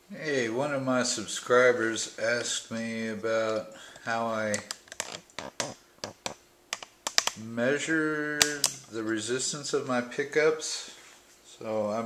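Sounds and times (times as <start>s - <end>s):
light irregular clicks and taps: 3.9s - 7.4s.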